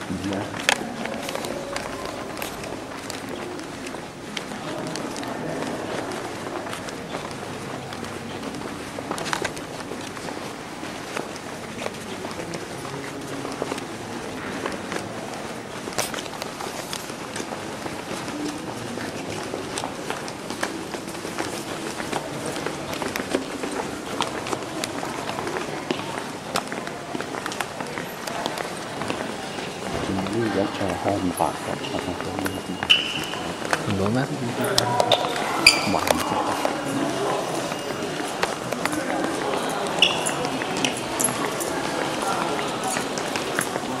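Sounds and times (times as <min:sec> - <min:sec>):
murmur of voices: 0:00.0 - 0:44.0
steady background noise: 0:00.0 - 0:44.0
footsteps on stone floor: 0:00.1 - 0:44.0.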